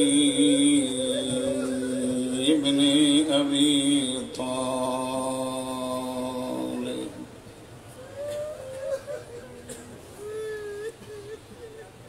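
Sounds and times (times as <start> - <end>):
man chanting: 0.0 - 7.3.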